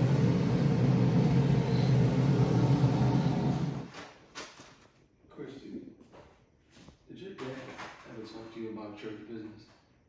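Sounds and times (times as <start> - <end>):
electrical machine hum: 0.0 - 4.0.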